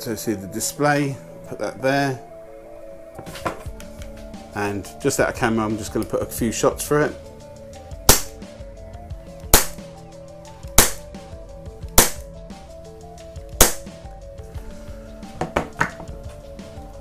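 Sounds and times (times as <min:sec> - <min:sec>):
airsoft pistol shots: 0:08.1 - 0:08.4, 0:09.5 - 0:09.8, 0:10.8 - 0:11.0, 0:12.0 - 0:12.2, 0:13.6 - 0:13.9.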